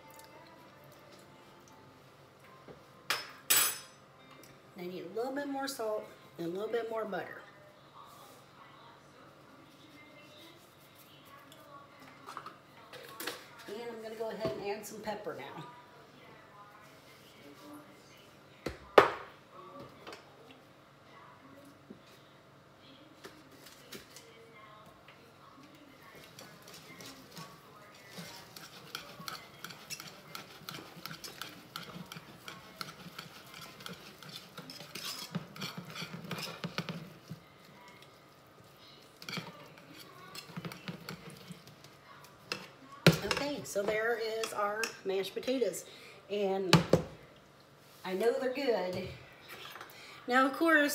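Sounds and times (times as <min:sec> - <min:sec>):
whisk scraping a saucepan: 0:26.1 - 0:43.8.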